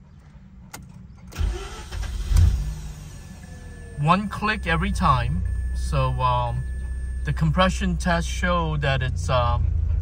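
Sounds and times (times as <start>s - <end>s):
car engine starting and idling: 0.0s - 10.0s.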